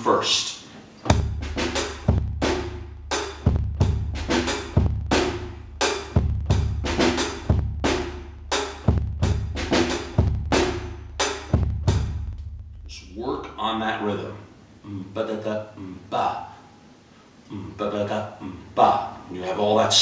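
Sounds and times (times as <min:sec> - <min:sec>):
bass drum beats: 0:01.1 - 0:13.6.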